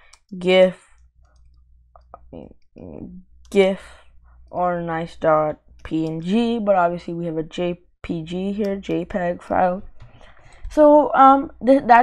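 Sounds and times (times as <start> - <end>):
keyboard keys clicking: 5.8 - 6.4.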